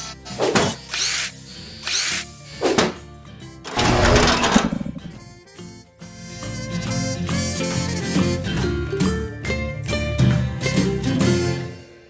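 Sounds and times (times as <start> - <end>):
mechanical whirring: 3.7 - 5.1.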